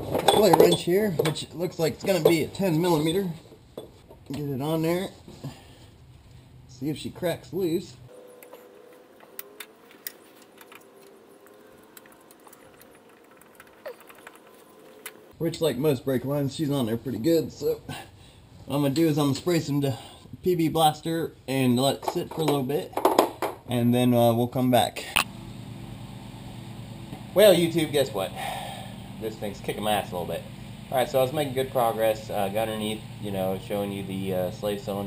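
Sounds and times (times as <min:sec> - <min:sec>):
faint steady hum: 0:25.0 - 0:35.0.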